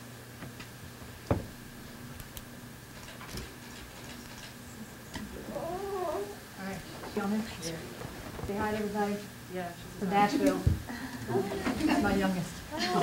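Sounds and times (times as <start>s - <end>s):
faint electrical hum: 0.0s - 13.0s
thin steady whine: 0.0s - 13.0s
faint voice: 5.3s - 6.8s.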